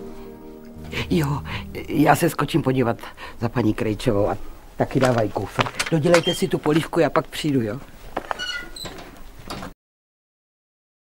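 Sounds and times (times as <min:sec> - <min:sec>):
gate clicking: 0:04.9 - 0:07.0
metal gate squeaking on hinges: 0:05.8 - 0:06.8, 0:08.3 - 0:09.2.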